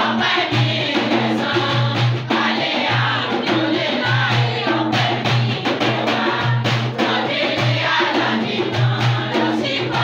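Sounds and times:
group singing a chant: 0:00.0 - 0:10.0.

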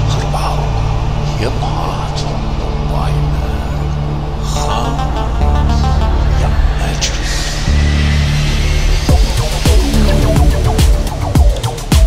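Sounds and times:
trance music: 0:00.0 - 0:12.0.

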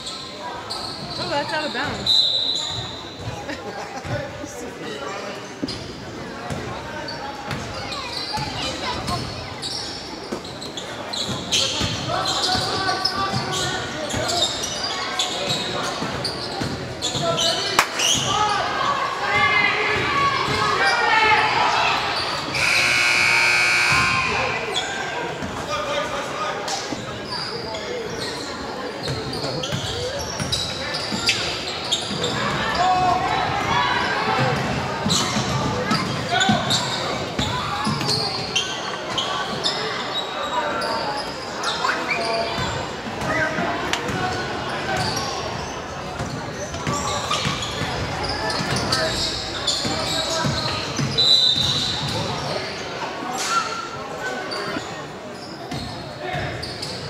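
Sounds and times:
sneakers squeaking: 0:00.0 - 0:04.5, 0:05.4 - 0:18.8, 0:21.9 - 0:26.2, 0:26.8 - 0:57.0
crowd talking and calling out: 0:00.0 - 0:57.0
long high-pitched tone: 0:22.6 - 0:24.5.

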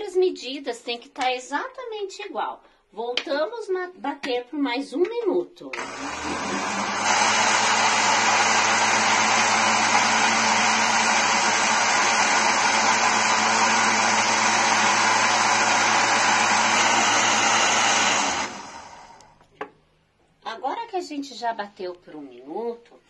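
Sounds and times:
blender running: 0:05.7 - 0:19.4.

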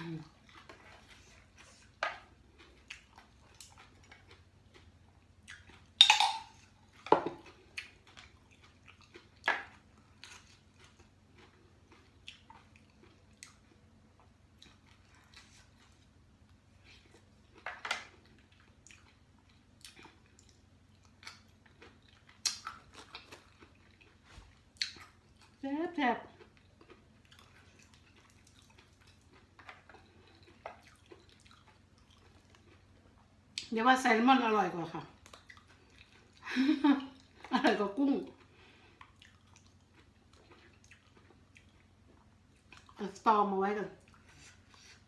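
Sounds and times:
person chewing and smacking: 0:00.0 - 0:25.6, 0:26.3 - 0:33.7, 0:35.1 - 0:43.0, 0:44.0 - 0:45.0.

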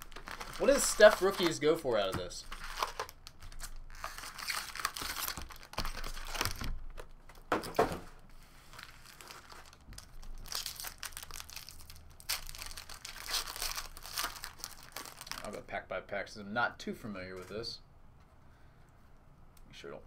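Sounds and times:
foil wrappers crinkling: 0:00.0 - 0:07.1, 0:08.6 - 0:15.6
foil pack tearing open: 0:02.5 - 0:06.6, 0:08.8 - 0:15.6.

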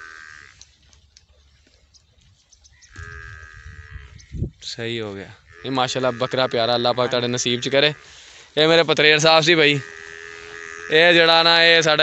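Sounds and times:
goat bleating: 0:05.3 - 0:08.2.

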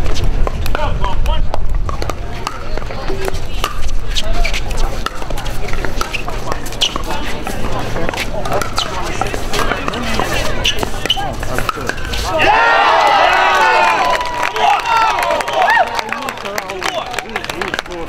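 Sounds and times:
crowd chatter: 0:00.0 - 0:18.0.

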